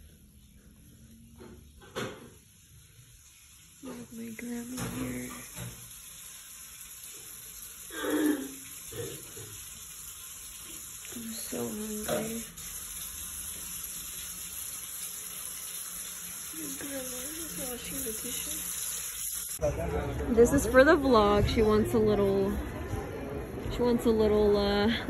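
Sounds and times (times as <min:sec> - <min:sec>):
tap running into sink: 0:04.6 - 0:06.0.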